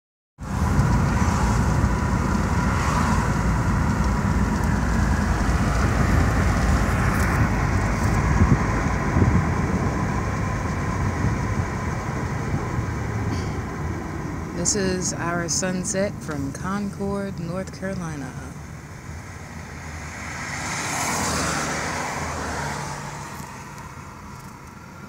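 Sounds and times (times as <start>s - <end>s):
car cabin road noise: 0.4s - 25.0s.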